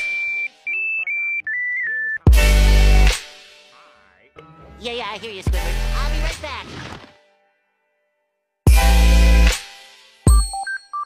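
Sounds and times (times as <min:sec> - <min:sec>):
high electronic beep tones: 0:00.0 - 0:02.3, 0:10.3 - 0:11.0.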